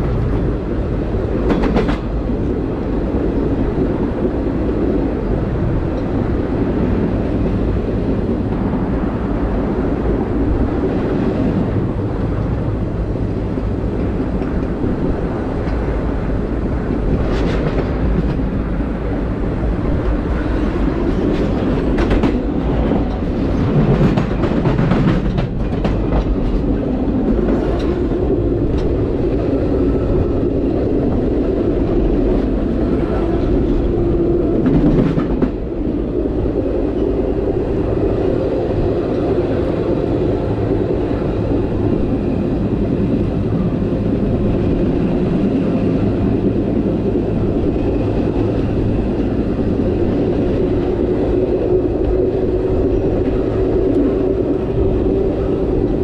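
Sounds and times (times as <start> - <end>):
train wheels rumbling on rails: 0.0 - 56.0
wheels clacking over rail joints: 20.0 - 29.2.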